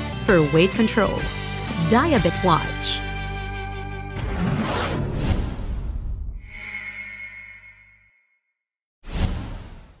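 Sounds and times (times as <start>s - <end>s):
background music: 0.0s - 4.5s.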